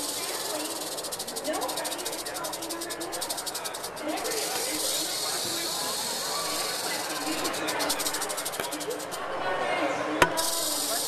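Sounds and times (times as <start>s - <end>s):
rattlesnake tail rattling: 0.0s - 9.2s, 10.4s - 11.0s.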